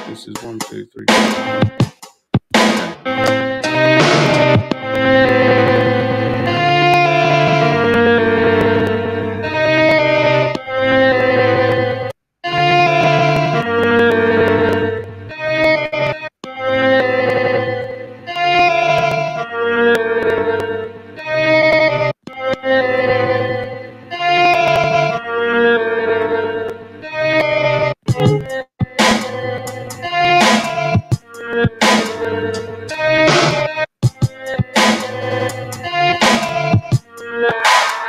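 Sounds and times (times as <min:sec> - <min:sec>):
sampled keyboard chords: 0:00.0 - 0:12.0, 0:28.1 - 0:37.5.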